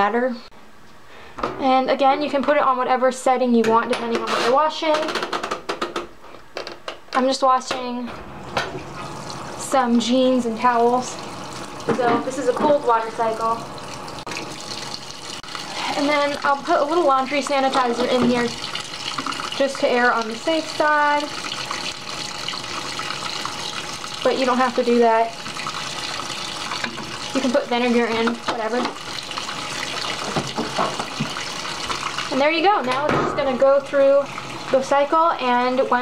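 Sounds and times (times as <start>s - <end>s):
water pouring into washing machine: 8.4s - 36.0s.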